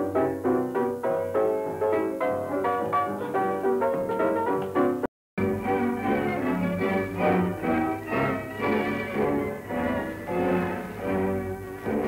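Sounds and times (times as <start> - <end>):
orchestral strings melody: 5.4 - 12.0.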